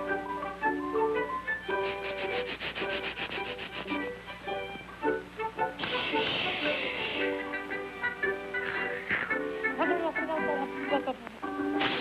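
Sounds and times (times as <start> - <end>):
cartoon orchestral music: 0.0 - 12.0
short hissing rush: 1.7 - 4.0
toothbrush scrubbing strokes: 1.7 - 4.1.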